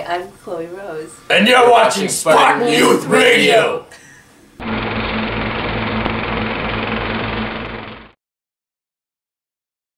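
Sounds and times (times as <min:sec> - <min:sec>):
dense buzzing rattle: 0:04.6 - 0:08.2
low hum: 0:04.6 - 0:08.2.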